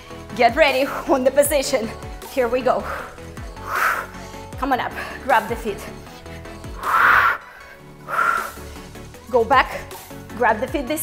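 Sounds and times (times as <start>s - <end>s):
workout music with steady beat: 0.0s - 11.0s
forceful exhales: 2.9s - 4.2s, 6.8s - 8.6s.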